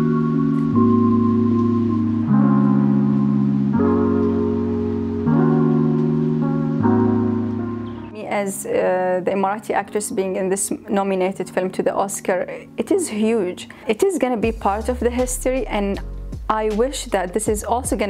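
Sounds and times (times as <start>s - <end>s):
background music sustained chords: 0.0s - 18.0s.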